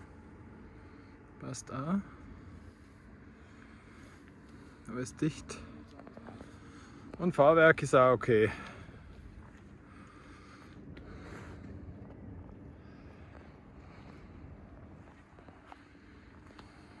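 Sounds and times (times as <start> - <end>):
low rumble: 0.0 - 17.0.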